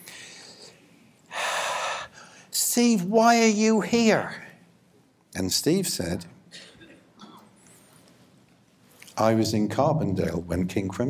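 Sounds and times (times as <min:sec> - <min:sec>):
man breathing in: 0:00.0 - 0:02.5.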